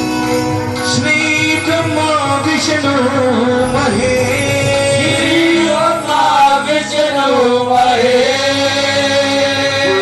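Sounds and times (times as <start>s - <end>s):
instrumental accompaniment: 0.0s - 10.0s
person singing devotional song: 0.8s - 10.0s.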